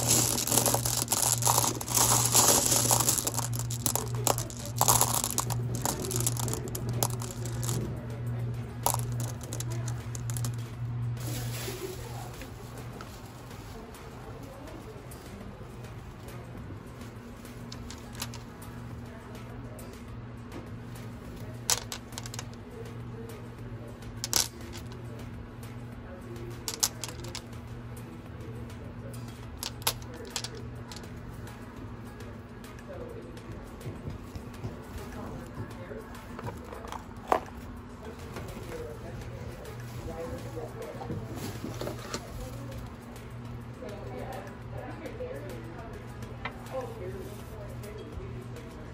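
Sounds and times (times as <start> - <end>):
stones clinking: 0.0 - 8.0, 8.8 - 10.6, 17.7 - 18.4, 21.7 - 22.5, 24.2 - 24.9, 26.7 - 27.5, 29.6 - 31.0.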